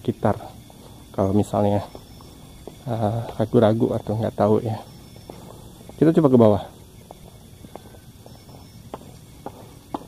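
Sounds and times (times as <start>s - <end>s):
footsteps walking: 0.2s - 10.0s.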